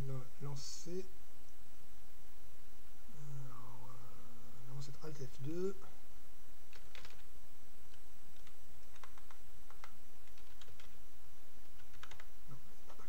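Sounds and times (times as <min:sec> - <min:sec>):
computer keyboard typing: 0:06.7 - 0:07.3, 0:08.3 - 0:11.0, 0:11.6 - 0:12.3.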